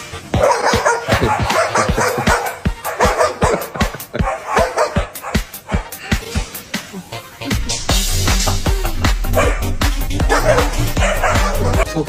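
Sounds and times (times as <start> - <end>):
background music with steady beat: 0.0 - 12.0
dog barking rapidly: 0.3 - 6.2, 9.2 - 11.8.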